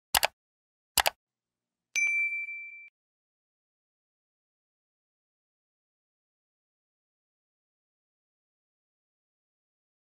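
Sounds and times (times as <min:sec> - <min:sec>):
bright notification ding: 0:02.0 - 0:02.9.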